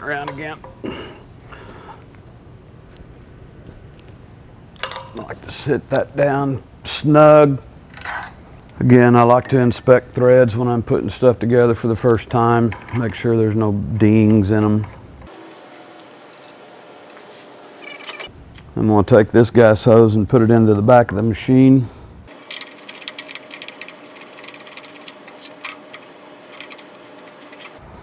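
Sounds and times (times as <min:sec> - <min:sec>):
man speaking: 0:00.0 - 0:00.7, 0:05.1 - 0:07.6, 0:08.8 - 0:14.9, 0:18.8 - 0:22.0
low room hum: 0:00.0 - 0:28.0.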